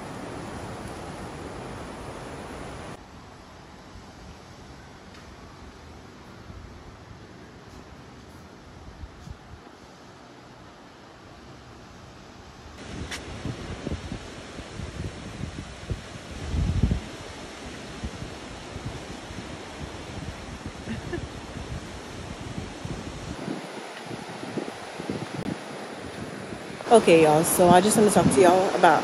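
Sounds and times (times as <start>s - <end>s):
ocean surf: 0.0s - 8.7s, 12.8s - 29.0s
wind buffeting microphone: 4.0s - 9.7s, 12.7s - 29.0s.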